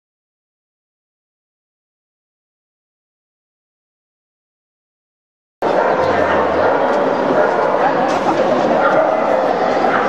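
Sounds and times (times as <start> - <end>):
dogs yelping and barking: 5.6 - 10.0
people talking: 5.6 - 10.0.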